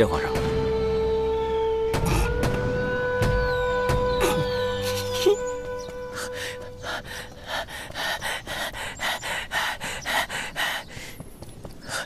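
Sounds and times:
person panting rapidly: 6.2s - 12.0s.

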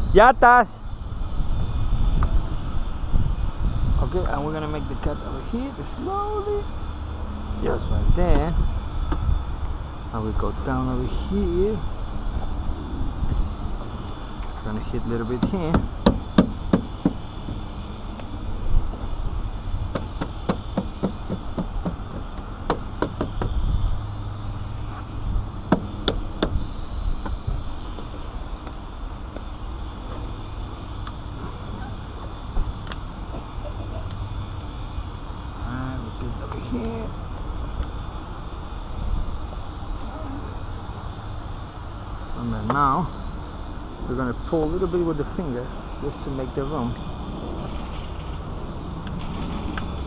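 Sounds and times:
low outdoor rumble: 0.0s - 50.0s.

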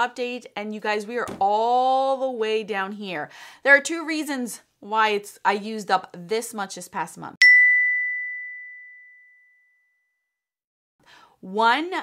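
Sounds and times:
high ringing ding: 7.4s - 10.1s.

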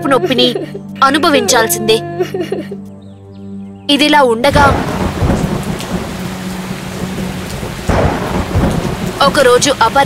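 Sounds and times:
heavy rain falling: 4.5s - 10.0s
loud thunderclap: 4.5s - 10.0s
rolling thunder: 4.5s - 10.0s.

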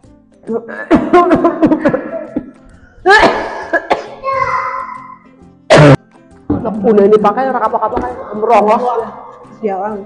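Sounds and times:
woman coughing: 0.7s - 2.4s, 3.0s - 4.2s, 5.7s - 6.0s
laughter: 0.8s - 2.5s.

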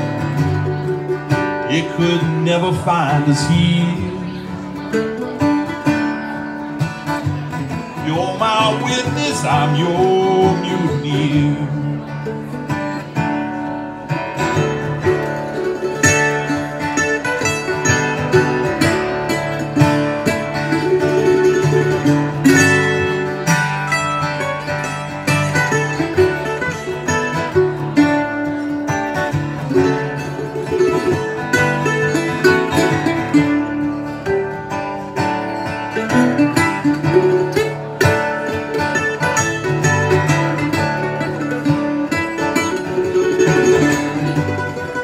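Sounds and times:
acoustic guitar strumming: 0.0s - 45.0s
plucked string instrument picking: 0.0s - 45.0s.

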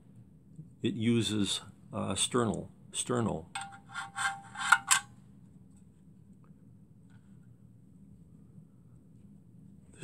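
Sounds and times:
metal scraping on metal: 3.6s - 5.1s.

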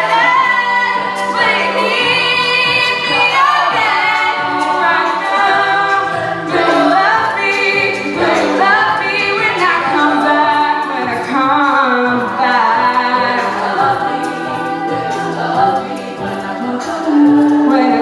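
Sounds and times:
female a cappella group singing: 0.0s - 18.0s.

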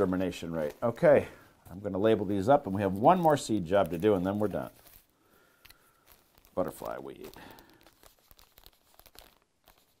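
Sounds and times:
pen scratching on plastic bag: 7.9s - 10.0s.

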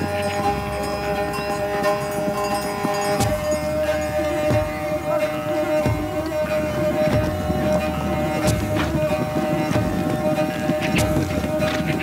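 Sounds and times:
background music drone: 0.0s - 12.0s
hooves drumming on dry ground: 0.0s - 12.0s.

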